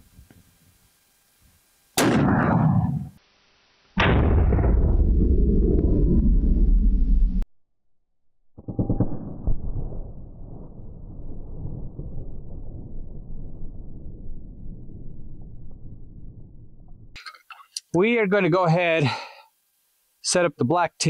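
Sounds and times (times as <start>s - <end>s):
low rumbling noise: 2.0s - 3.2s, 4.0s - 7.4s, 8.6s - 17.2s
rifle shot crack: 2.0s - 3.2s
long deep boom: 4.0s - 7.4s, 8.6s - 17.1s.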